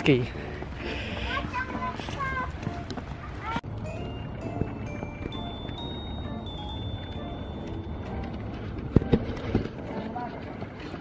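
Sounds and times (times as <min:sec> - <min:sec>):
footsteps on snow: 0:00.0 - 0:03.6, 0:04.4 - 0:11.0.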